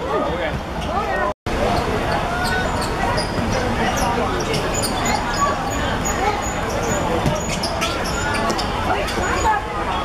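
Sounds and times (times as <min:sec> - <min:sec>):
shoes on court surface: 0:06.7 - 0:09.4.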